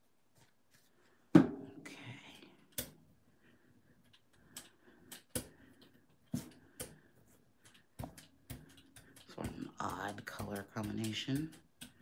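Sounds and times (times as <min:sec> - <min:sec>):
roller clicks and taps: 0:04.1 - 0:12.0.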